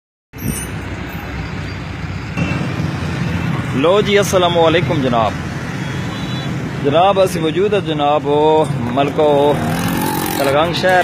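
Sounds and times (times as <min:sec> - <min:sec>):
motorcycle street traffic: 0:00.4 - 0:11.0.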